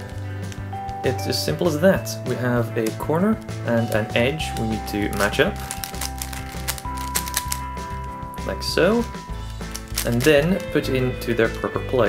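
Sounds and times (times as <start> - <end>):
background music: 0.0 - 12.0
puzzle cube faces clicking: 3.8 - 8.1, 9.0 - 10.7.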